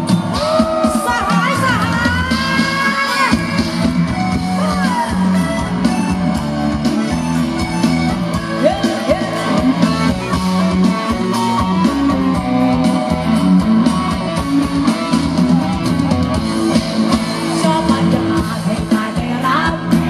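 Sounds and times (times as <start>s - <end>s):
live band playing loud: 0.0s - 20.0s
woman singing into a microphone: 17.6s - 20.0s.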